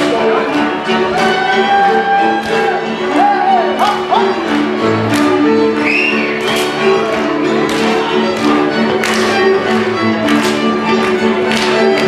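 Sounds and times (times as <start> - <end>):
fiddle-led folk dance music: 0.0 - 12.0.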